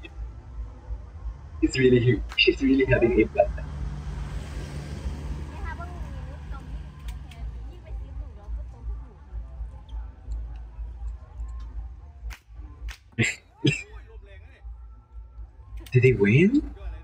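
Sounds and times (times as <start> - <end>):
low hum: 0.0 - 12.8
crowd chatter: 1.6 - 3.6, 5.4 - 17.0.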